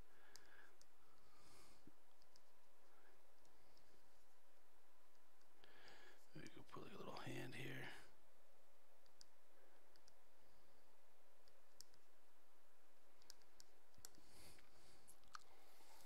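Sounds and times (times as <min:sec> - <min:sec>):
low voice: 0:06.4 - 0:08.1.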